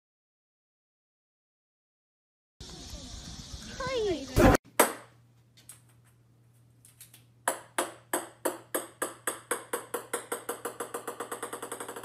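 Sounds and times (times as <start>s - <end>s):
ball bouncing on wooden floor: 7.4s - 12.0s.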